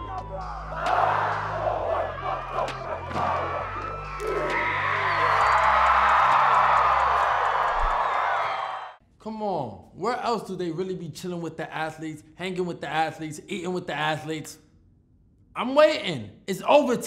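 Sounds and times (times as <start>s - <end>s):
background music with deep bass: 0.0s - 7.6s
players shouting in chorus: 0.0s - 8.9s
loud crowd roar: 0.0s - 9.0s.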